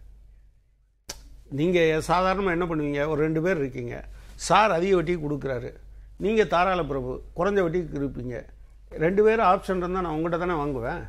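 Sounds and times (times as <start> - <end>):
sharp click: 1.1 - 1.4
man speaking: 1.5 - 11.0.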